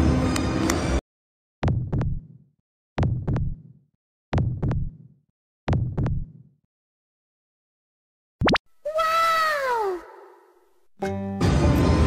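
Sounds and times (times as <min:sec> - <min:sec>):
heartbeat thumps: 0:01.6 - 0:02.4, 0:03.0 - 0:05.1, 0:05.7 - 0:06.4.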